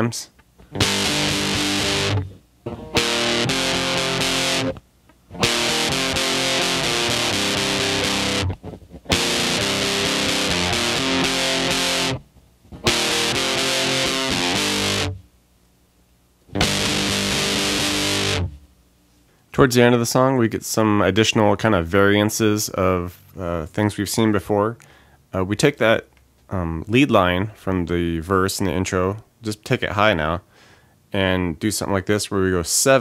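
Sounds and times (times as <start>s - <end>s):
distorted electric guitar chords: 0.6s - 15.3s, 16.5s - 18.7s.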